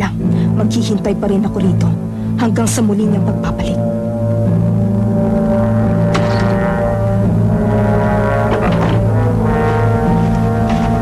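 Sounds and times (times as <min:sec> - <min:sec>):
low sustained brass notes: 0:00.2 - 0:11.0
dark orchestral chord: 0:03.9 - 0:11.0.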